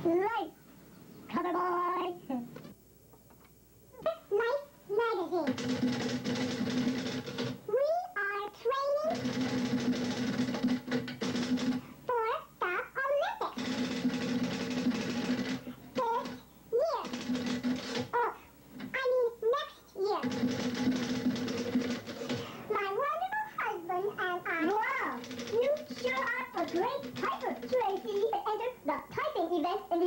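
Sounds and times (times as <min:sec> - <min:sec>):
typewriter keys clattering: 0:05.5 - 0:07.6, 0:09.2 - 0:11.8, 0:13.6 - 0:16.4, 0:17.0 - 0:18.1, 0:20.2 - 0:22.5, 0:24.6 - 0:28.3
high-pitched sped-up voice talking: 0:16.0 - 0:17.1, 0:22.7 - 0:30.0.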